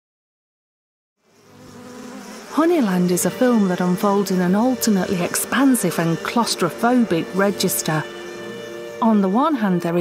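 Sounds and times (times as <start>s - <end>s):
bees buzzing: 1.2s - 10.0s.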